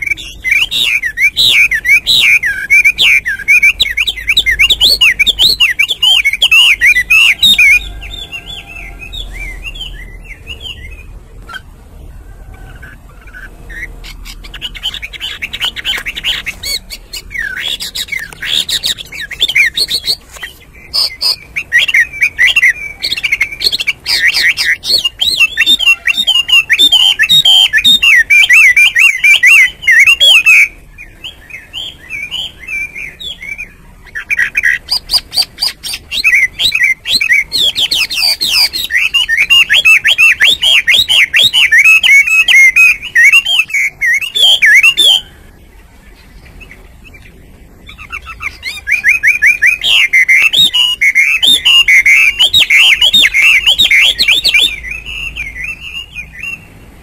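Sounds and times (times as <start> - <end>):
bird singing warbled song: 0.0 - 57.0.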